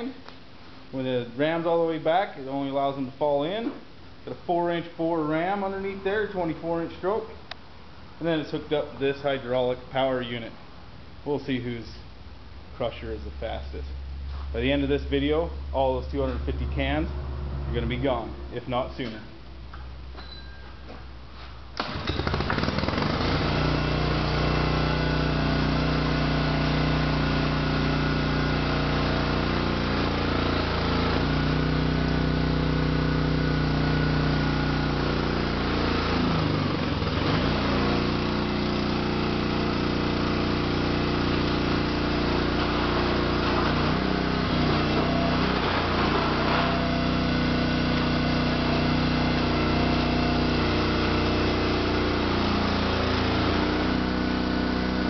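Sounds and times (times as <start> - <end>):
hydraulic power unit engine: 14.9 - 20.7, 21.8 - 55.0.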